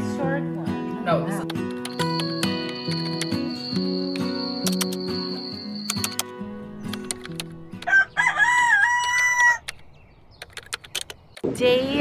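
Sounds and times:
short clicks: 1.4 - 7.9, 10.4 - 11.4
rooster crowing: 7.8 - 9.6.

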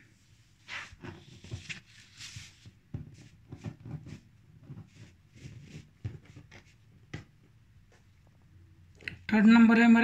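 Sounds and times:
paper rustling: 0.6 - 4.2.

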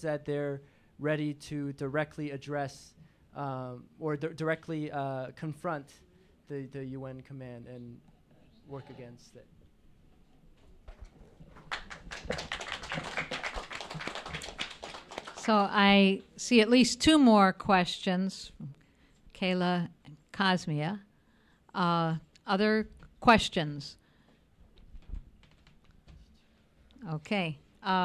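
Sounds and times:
audience applauding: 11.4 - 15.6.

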